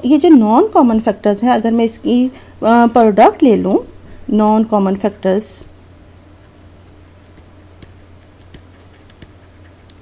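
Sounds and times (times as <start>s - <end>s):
steady low hum: 0.0s - 10.0s
stylus tapping on tablet screen: 7.3s - 10.0s.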